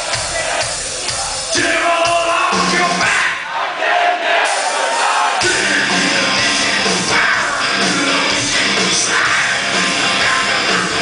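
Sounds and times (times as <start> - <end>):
metal band playing live: 0.0 - 3.2, 4.5 - 11.0
audience shouting along: 0.0 - 11.0.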